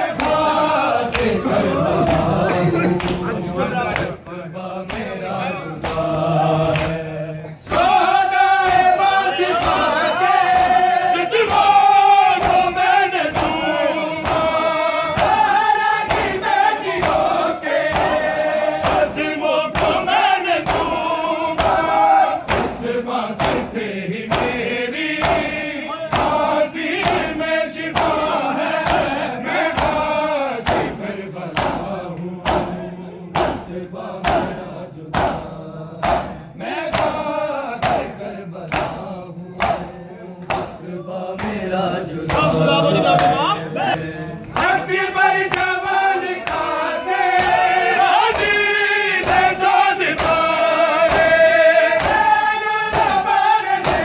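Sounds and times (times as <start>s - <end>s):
men chanting together: 0.0s - 54.0s.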